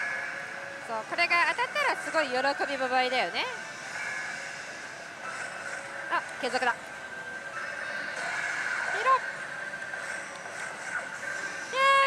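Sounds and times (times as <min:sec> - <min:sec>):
din of gaming parlour: 0:00.0 - 0:12.0
slot machine electronic effects: 0:07.4 - 0:12.0.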